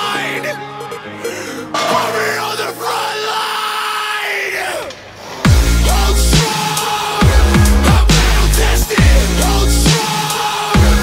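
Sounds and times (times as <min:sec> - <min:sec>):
sparse backing music: 0:00.0 - 0:03.2, 0:05.2 - 0:11.0.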